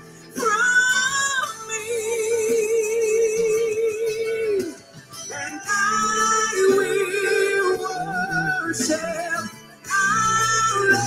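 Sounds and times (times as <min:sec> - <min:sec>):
sustained backing music: 0:00.0 - 0:11.0
woman singing gospel song: 0:00.2 - 0:11.0.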